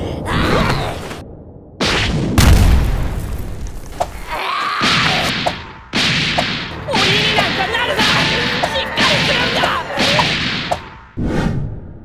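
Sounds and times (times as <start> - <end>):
deep boom: 1.2 - 4.0.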